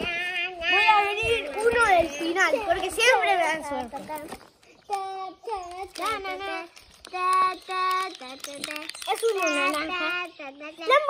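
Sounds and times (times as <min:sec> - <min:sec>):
child singing wordless tune: 0:00.0 - 0:11.0.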